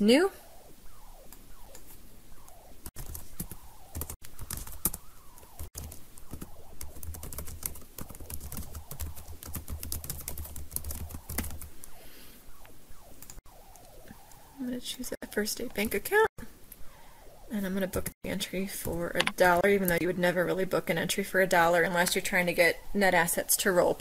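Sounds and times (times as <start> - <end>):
low hum: 0.0 - 20.6.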